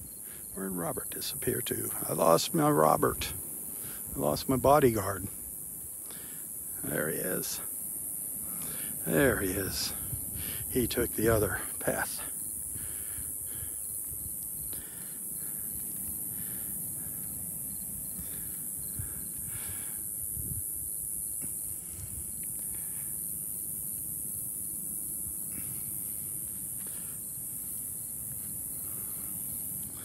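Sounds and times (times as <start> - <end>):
high-pitched insect chorus: 0.0 - 30.0
wind rumble on microphone: 9.7 - 10.8, 12.6 - 22.9.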